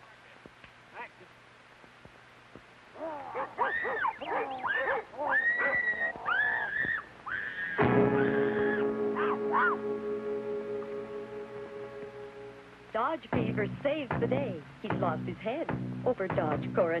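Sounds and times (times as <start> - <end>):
high wavering shrieks: 3.0 - 10.2
sustained music chord: 7.8 - 15.3.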